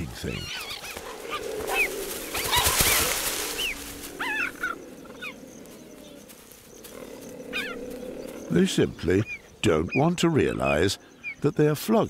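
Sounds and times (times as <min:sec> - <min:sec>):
cheetahs chirping: 0:00.0 - 0:12.0.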